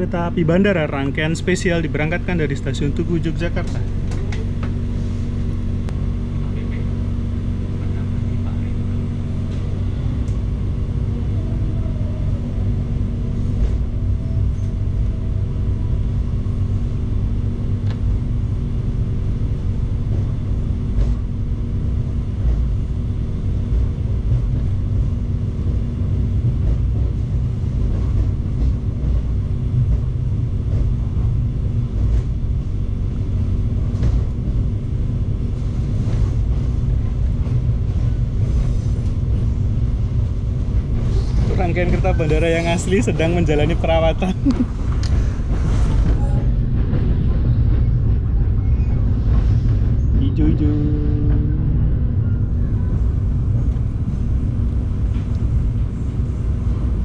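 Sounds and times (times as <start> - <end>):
train running rumble: 0.0 - 57.0.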